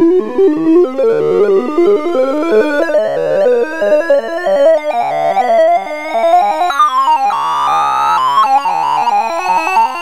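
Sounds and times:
rapid synthesized beeps: 0:06.4 - 0:10.0
rising siren-like tone: 0:06.7 - 0:10.0.

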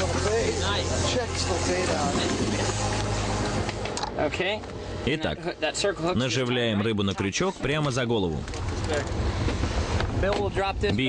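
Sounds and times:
man's voice: 0:00.0 - 0:02.6
outboard motors humming: 0:00.0 - 0:11.0
wind noise on microphone: 0:08.4 - 0:11.0.

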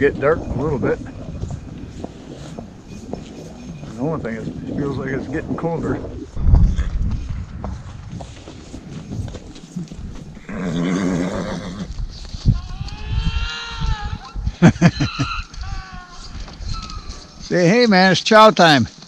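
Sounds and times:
hoof steps on snow: 0:01.4 - 0:04.5, 0:06.5 - 0:10.8
horses neighing: 0:09.6 - 0:17.4.

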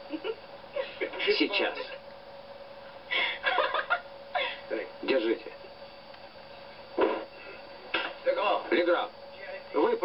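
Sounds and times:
film soundtrack hiss and hum: 0:00.0 - 0:10.0.

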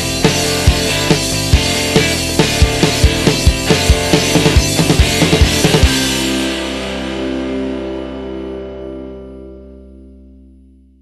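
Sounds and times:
guitar chord held: 0:02.9 - 0:11.0.

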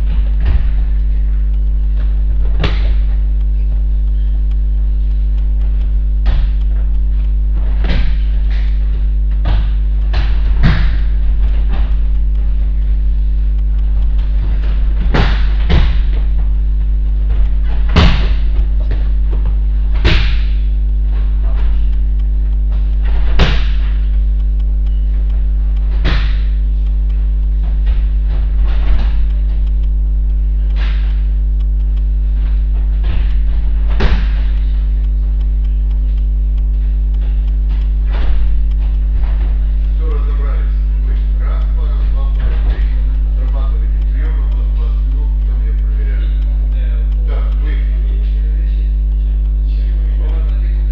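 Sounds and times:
thuds on gym mats: 0:00.0 - 0:01.4, 0:02.0 - 0:03.3, 0:06.2 - 0:06.9, 0:07.5 - 0:12.6, 0:14.2 - 0:21.9, 0:22.7 - 0:24.2, 0:25.9 - 0:26.6, 0:27.6 - 0:29.6, 0:32.5 - 0:34.8, 0:37.2 - 0:39.7
low electrical hum: 0:00.0 - 0:50.9.

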